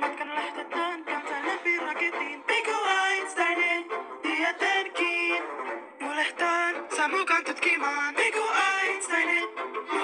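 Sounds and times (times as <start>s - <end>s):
backing music: 0.0s - 10.0s
person singing: 0.0s - 10.0s.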